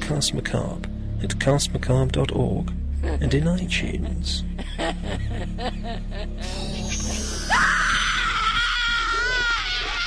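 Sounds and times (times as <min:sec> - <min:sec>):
faint music: 0:00.0 - 0:10.0
high-pitched scream: 0:06.4 - 0:10.0.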